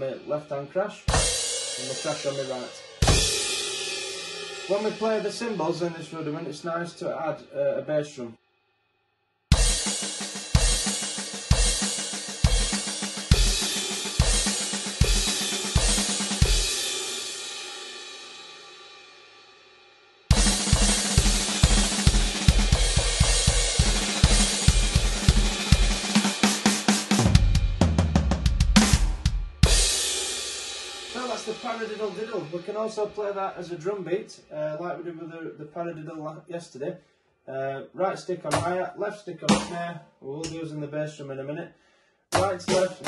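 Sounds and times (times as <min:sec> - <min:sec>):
electronic bass drum kicks: 0:03.0 - 0:03.5, 0:20.3 - 0:30.0.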